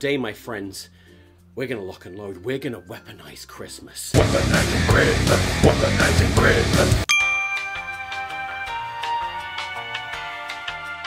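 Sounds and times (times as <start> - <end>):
gentle music: 0.0 - 4.1, 7.0 - 11.0
bell-like chime ringing: 7.1 - 8.9.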